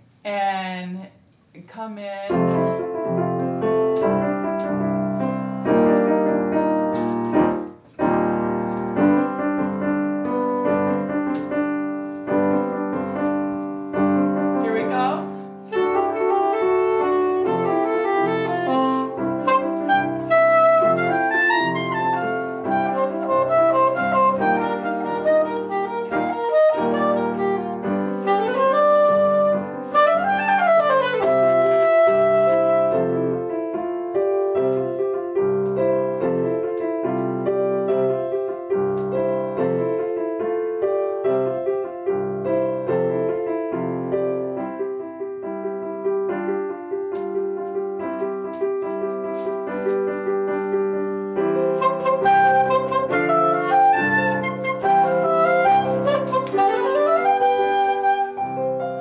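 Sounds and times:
grand piano playing: 2.3s - 59.0s
soprano saxophone melody: 14.6s - 33.4s, 51.6s - 59.0s.

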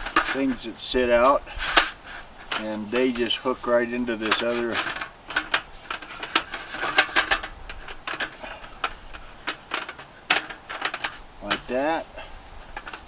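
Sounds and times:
metal slats clicking and rattling: 0.0s - 0.6s, 1.2s - 3.6s, 4.2s - 11.7s.

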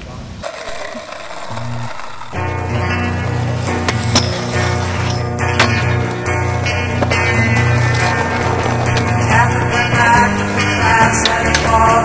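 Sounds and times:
skateboard wheels rolling on concrete: 0.0s - 12.0s
music with steady bass line: 2.4s - 12.0s.

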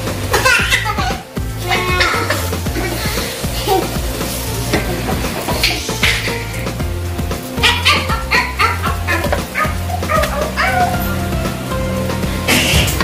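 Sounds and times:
background music with steady beat: 0.0s - 13.0s
dog barking: 7.6s - 11.1s.

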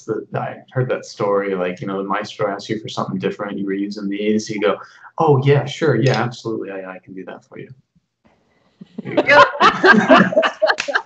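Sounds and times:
people laughing: 8.8s - 11.0s.

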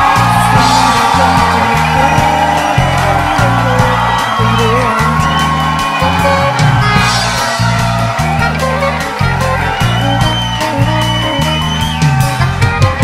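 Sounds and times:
drums and cymbals: 0.0s - 13.0s
electric bass notes: 0.0s - 13.0s
jazz band playing: 0.0s - 13.0s.

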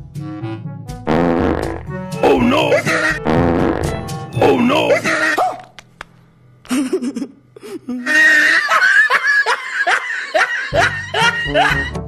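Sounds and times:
background music: 0.0s - 5.7s, 10.3s - 12.0s
wet fart sound effect: 0.3s - 1.9s, 3.2s - 3.9s
wavering voice saying oh no: 2.2s - 3.1s, 4.4s - 5.4s.

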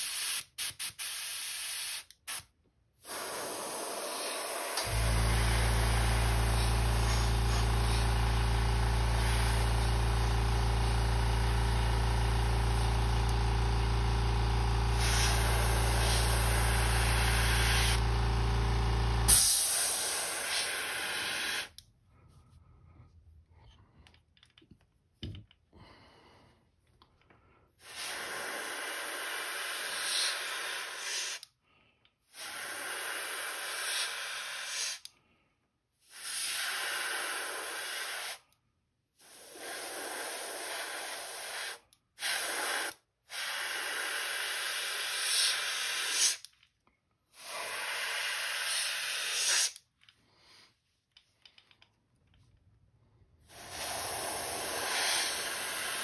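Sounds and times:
airbrush spraying hiss: 0.0s - 8.2s, 9.1s - 10.0s, 14.9s - 18.0s, 19.3s - 21.8s, 27.8s - 31.4s, 39.3s - 46.4s, 47.5s - 49.8s, 53.5s - 56.0s
air compressor humming: 3.0s - 21.8s, 53.4s - 56.0s.

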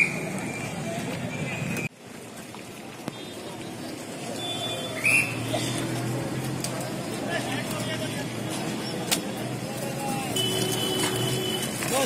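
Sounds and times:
vehicle engines running: 0.0s - 12.0s.

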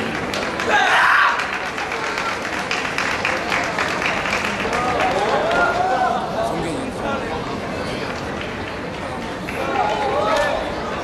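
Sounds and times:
chatter in echoing hall: 0.0s - 11.0s.

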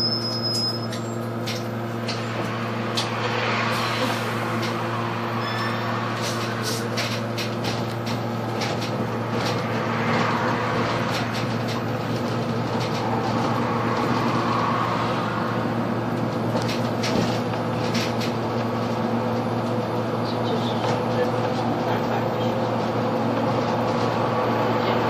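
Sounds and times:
bus drivetrain hum: 0.0s - 25.0s
road noise: 0.0s - 25.0s.

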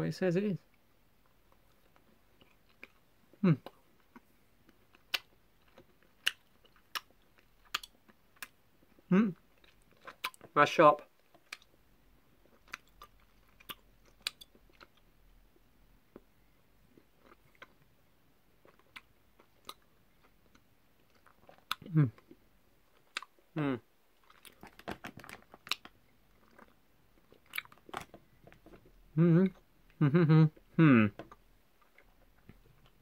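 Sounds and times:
sticky chewing clicks: 3.6s - 8.6s
person humming: 9.1s - 9.4s, 29.2s - 31.2s.

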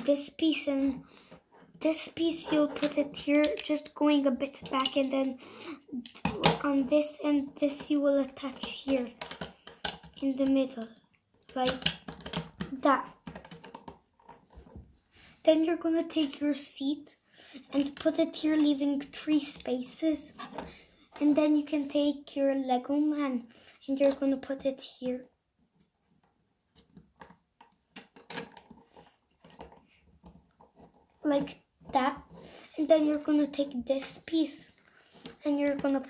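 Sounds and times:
plastic bricks clicking: 11.5s - 14.0s.

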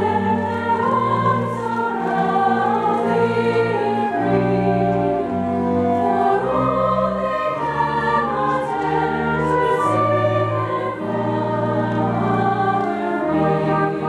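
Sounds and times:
string orchestra: 0.0s - 14.0s
women's choir singing in harmony: 0.0s - 14.0s.

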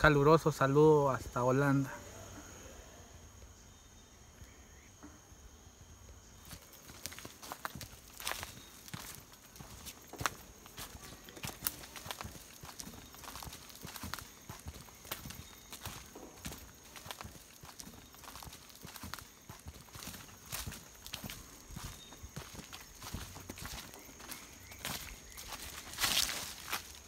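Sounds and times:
footsteps on dry leaves: 6.4s - 27.0s.

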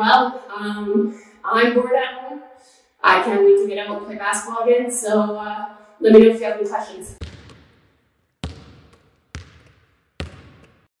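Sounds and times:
basketball bouncing on hard floor: 7.2s - 10.9s.

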